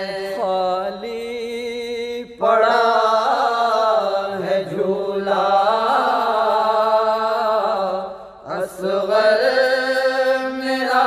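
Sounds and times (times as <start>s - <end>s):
voices chanting a lament: 0.0s - 11.0s.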